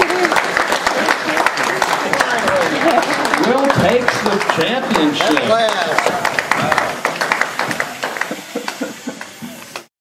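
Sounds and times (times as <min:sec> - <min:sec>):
hand clapping: 0:00.0 - 0:09.9.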